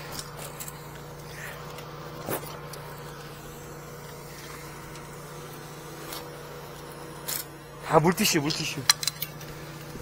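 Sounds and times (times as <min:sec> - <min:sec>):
engine idling hum: 0:00.0 - 0:10.0.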